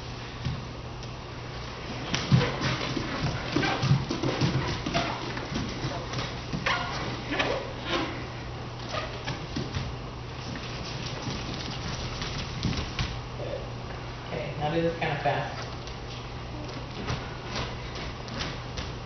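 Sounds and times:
steady low hum: 0.0s - 19.0s
bare feet thumping on dance floor: 0.4s - 0.7s, 1.9s - 7.7s, 9.0s - 13.2s, 16.7s - 19.0s.

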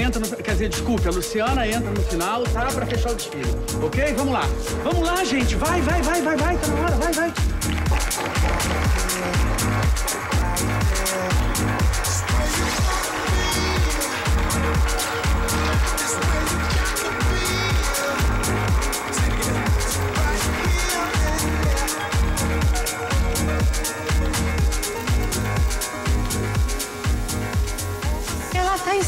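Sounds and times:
electronic dance music: 0.0s - 29.0s.

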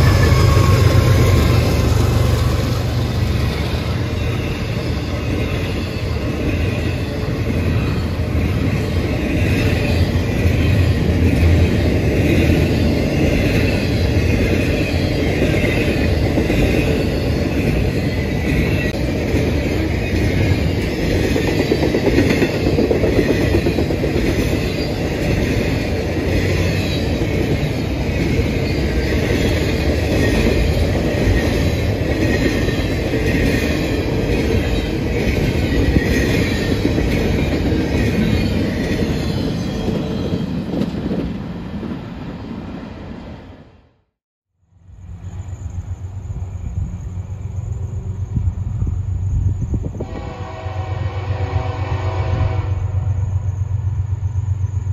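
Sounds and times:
high-pitched wheel squeal: 0.0s - 2.4s
freight train wheels rumbling: 0.0s - 43.9s, 44.7s - 54.9s.

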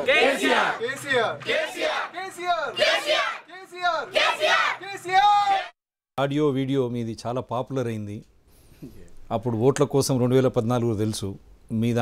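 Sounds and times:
group chanting in unison: 0.0s - 5.7s.

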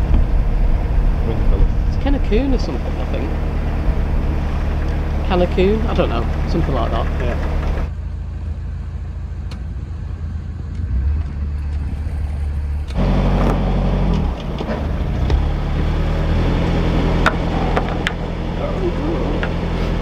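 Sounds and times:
rushing noise: 0.0s - 7.9s
diesel engine running: 0.0s - 20.0s.

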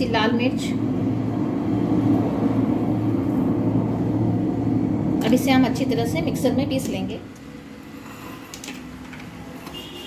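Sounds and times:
steady low rumble: 0.0s - 7.3s.

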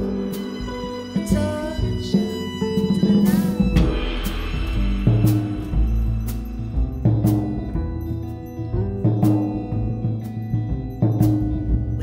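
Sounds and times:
bowed violin gliding notes: 0.0s - 9.8s
double bass: 0.0s - 12.0s
drum hits: 0.6s - 12.0s.

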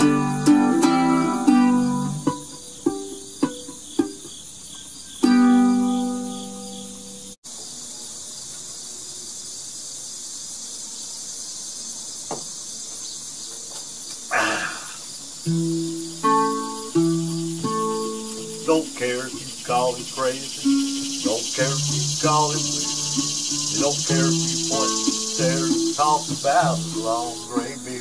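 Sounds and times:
ukulele notes and strummed chord: 0.0s - 4.3s, 5.2s - 6.6s, 15.5s - 19.0s, 20.6s - 28.0s
crickets chirring: 0.0s - 28.0s.

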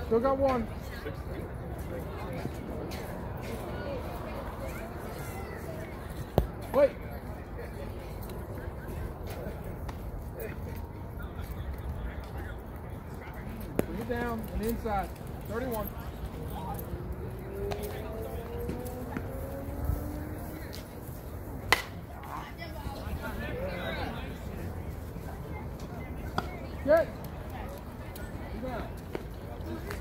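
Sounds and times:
bat hitting ball: 21.6s - 22.0s.

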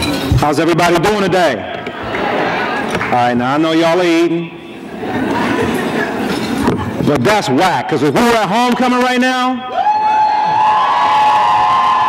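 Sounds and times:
crowd noise: 0.0s - 12.0s
high whoop of cheering: 9.7s - 12.0s.

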